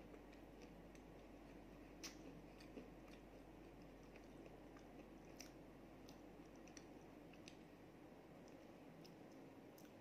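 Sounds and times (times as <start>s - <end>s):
cookie chewing crunches: 0.0s - 10.0s
low steady hum: 0.0s - 10.0s.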